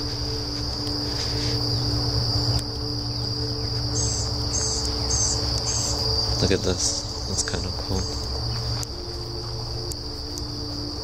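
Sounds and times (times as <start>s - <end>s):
crickets trilling: 0.0s - 11.0s
bird chirping: 1.3s - 8.8s.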